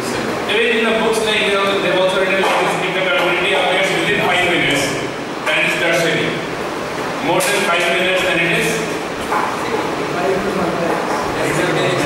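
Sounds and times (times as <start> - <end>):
man speaking: 0.0 - 6.5, 7.2 - 9.0, 9.6 - 12.0.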